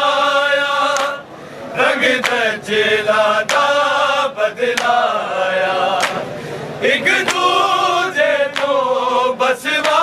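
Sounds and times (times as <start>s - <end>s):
men chanting in unison: 0.0s - 10.0s
hands slapping chests: 6.0s - 6.3s, 8.5s - 8.8s.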